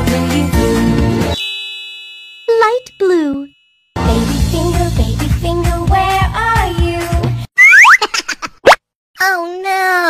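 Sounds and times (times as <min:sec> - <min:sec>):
cartoon pops: 0:07.6 - 0:08.0, 0:08.6 - 0:08.9.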